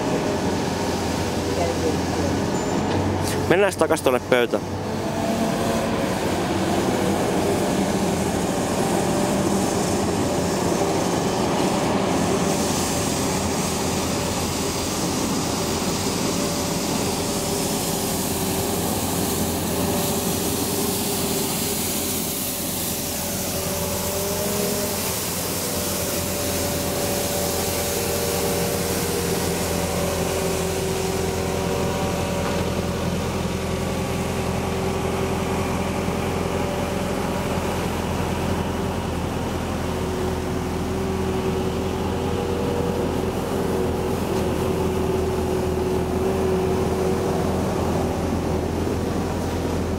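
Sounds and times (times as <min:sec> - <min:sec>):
street sweeper engine humming: 0:00.0 - 0:49.9.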